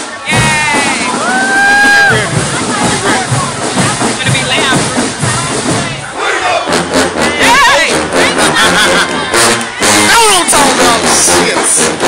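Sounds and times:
crowd shouting and cheering: 0.0 - 12.0
marching band playing: 0.0 - 12.0.

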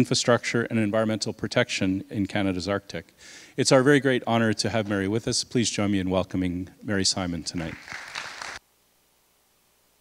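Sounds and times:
audience applause: 7.6 - 8.6.

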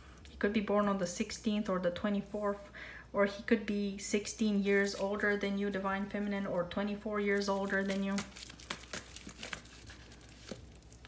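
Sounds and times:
cards being shuffled: 7.4 - 11.0.

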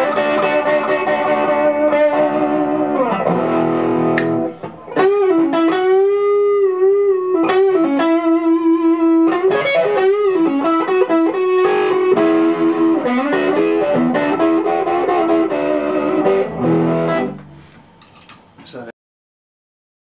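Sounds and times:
electric guitar lead line: 0.0 - 17.7.

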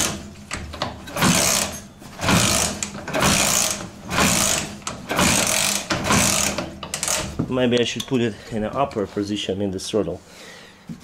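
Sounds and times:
motorcycle engine kick-start cranking: 0.0 - 7.4.

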